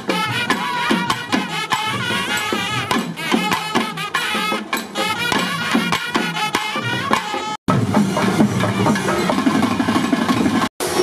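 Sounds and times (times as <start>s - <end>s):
brass band playing: 0.0s - 7.6s
drums: 0.0s - 11.0s.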